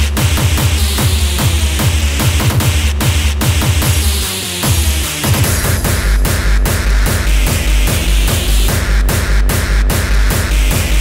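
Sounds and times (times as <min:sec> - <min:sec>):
electronic dance music: 0:00.0 - 0:11.0
heavy bass: 0:00.0 - 0:11.0
pounding kick drum: 0:00.0 - 0:11.0.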